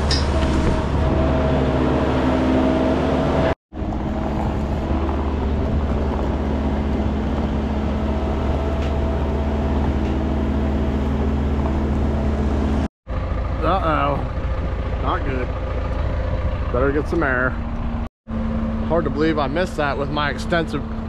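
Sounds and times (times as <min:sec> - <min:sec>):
loader engine running: 0:00.0 - 0:21.0.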